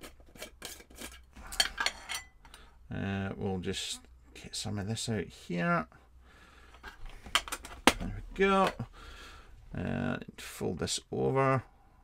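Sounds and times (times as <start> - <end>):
metal tin scraping: 0.0 - 2.4.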